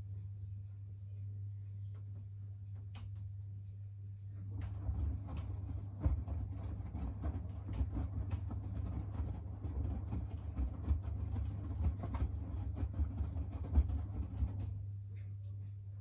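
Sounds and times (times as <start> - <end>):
motor hum: 4.3 - 15.6
laundry tumbling in washing machine: 4.4 - 15.0.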